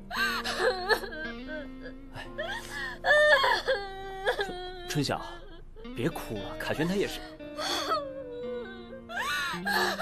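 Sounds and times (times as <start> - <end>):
background music with held notes: 0.0 - 10.0
woman crying and wailing: 0.1 - 5.9, 7.3 - 10.0.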